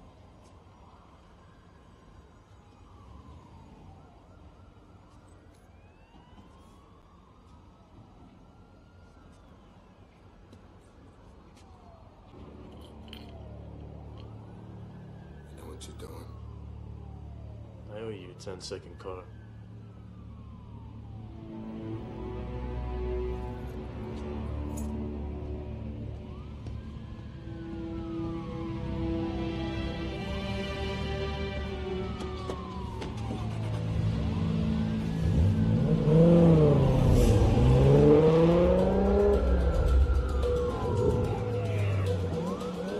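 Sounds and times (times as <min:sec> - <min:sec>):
police sirens wailing: 0:00.0 - 0:42.9
car engine revving: 0:33.4 - 0:42.9.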